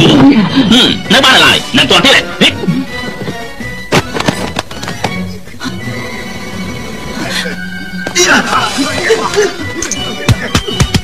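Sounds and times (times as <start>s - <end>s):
film music with long held notes: 0.0s - 11.0s.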